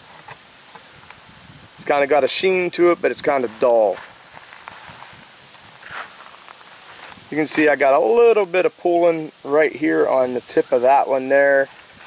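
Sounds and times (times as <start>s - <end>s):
soft steady hiss: 0.0s - 12.0s.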